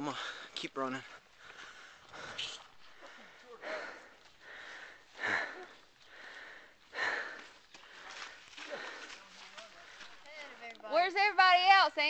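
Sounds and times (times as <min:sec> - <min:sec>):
runner breathing heavily: 0:00.0 - 0:10.6.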